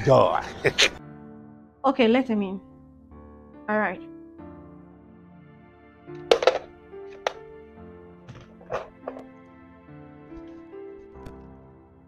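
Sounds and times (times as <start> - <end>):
soft background music: 0.0 - 12.0
telephone handset clattering down: 6.2 - 7.4.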